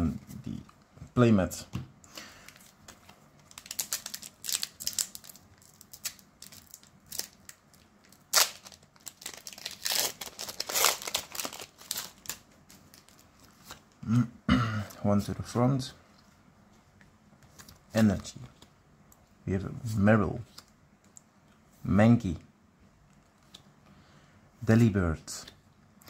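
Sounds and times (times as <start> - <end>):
foil wrapper crinkling and tearing: 3.4 - 13.8.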